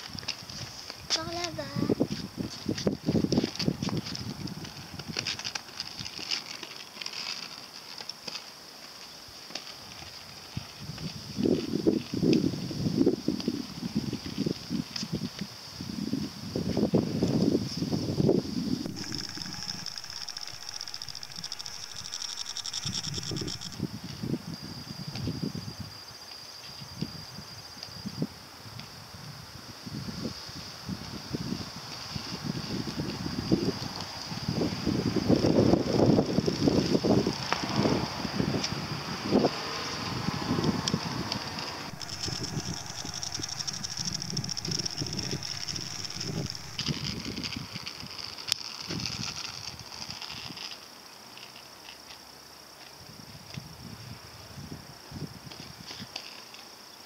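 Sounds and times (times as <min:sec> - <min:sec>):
high whirring: 0:18.9 - 0:23.8, 0:41.8 - 0:47.3.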